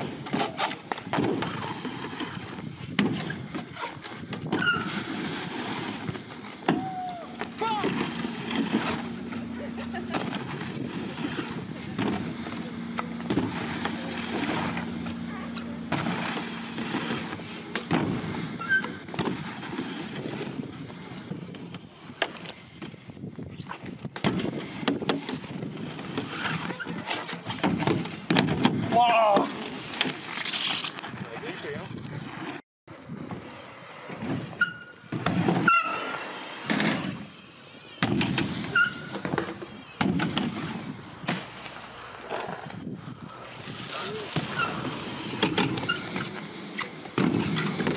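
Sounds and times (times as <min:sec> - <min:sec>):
bike tyres rolling on ramp: 0:00.0 - 0:47.9
high squeaks: 0:03.2 - 0:05.2, 0:18.4 - 0:19.1, 0:34.5 - 0:37.1, 0:38.6 - 0:40.0, 0:43.9 - 0:47.0
bike landing knocks: 0:38.0 - 0:38.6, 0:39.2 - 0:41.6.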